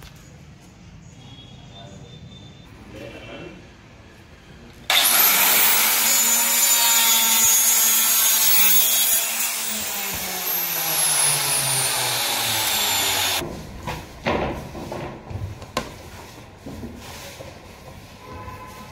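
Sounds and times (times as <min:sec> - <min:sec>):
electric circular saw cutting: 0:04.9 - 0:13.4.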